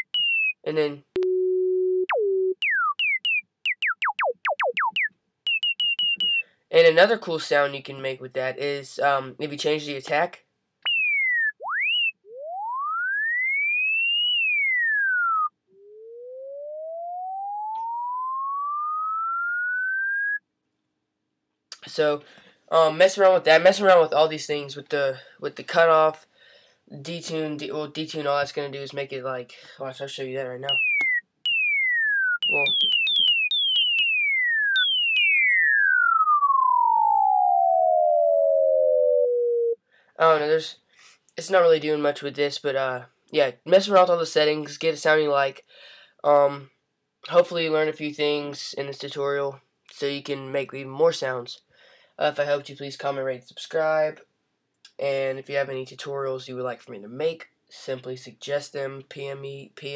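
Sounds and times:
synthesizer sine wave pitch sweeps: 0:00.0 - 0:06.4, 0:10.9 - 0:20.4, 0:30.7 - 0:39.8
synth notes gliding high to low: 0:31.5 - 0:39.8.

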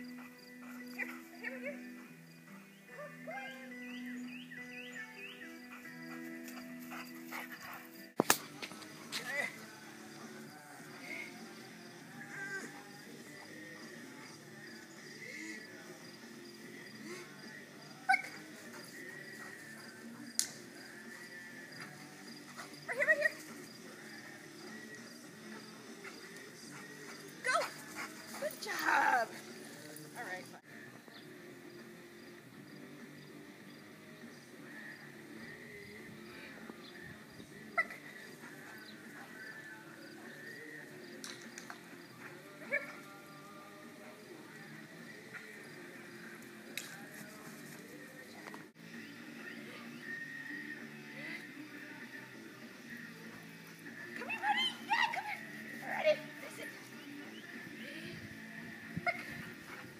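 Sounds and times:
outdoor background noise: 0:00.0 - 0:59.9.

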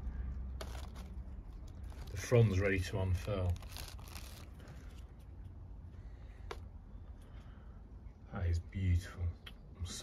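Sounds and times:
faint handling noise: 0:00.6 - 0:07.5.

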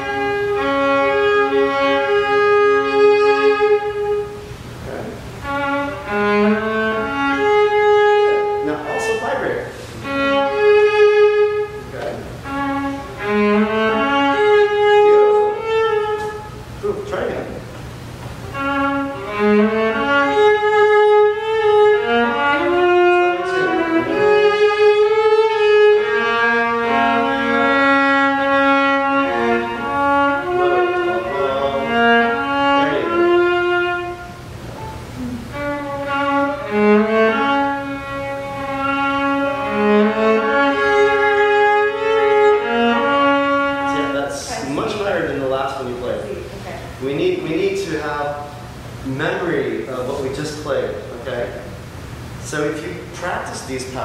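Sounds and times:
violas playing long notes: 0:00.0 - 0:54.0.

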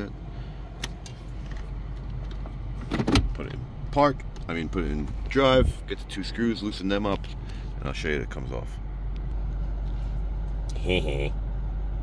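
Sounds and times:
car engine low hum: 0:00.0 - 0:12.0.

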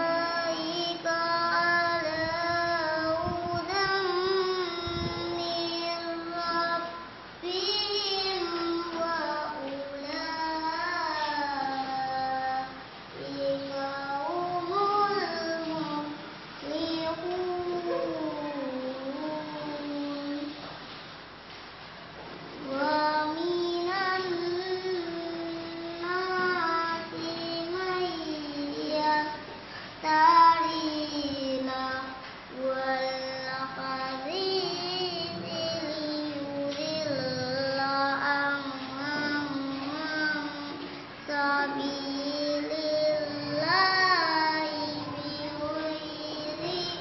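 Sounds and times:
girl reciting melodically: 0:00.0 - 0:20.9, 0:22.5 - 0:47.0.

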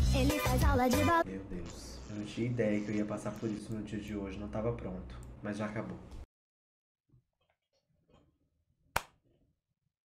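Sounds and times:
hand clap: 0:09.0 - 0:09.2.

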